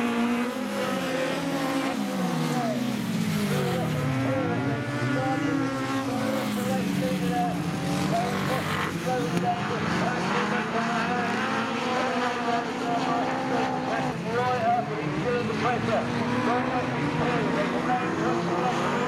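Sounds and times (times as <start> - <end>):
race car engines revving: 0.0 - 19.0.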